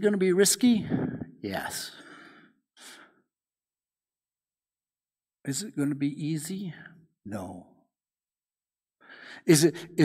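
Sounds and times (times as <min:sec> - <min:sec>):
man speaking: 0:00.0 - 0:02.1, 0:05.5 - 0:07.8, 0:09.4 - 0:10.0.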